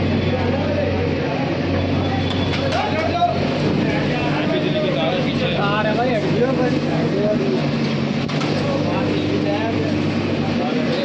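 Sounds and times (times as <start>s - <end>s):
diesel engine running: 0.0s - 11.0s
people's voices: 0.0s - 11.0s.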